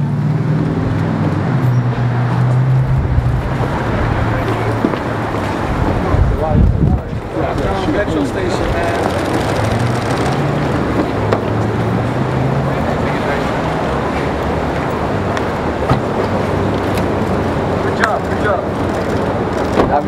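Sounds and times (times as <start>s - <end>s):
street traffic noise: 0.0s - 20.0s
car engine running: 7.2s - 12.2s.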